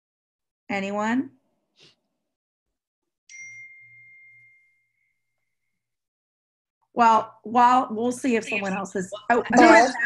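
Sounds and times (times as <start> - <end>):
high ringing ding: 3.3 - 5.9.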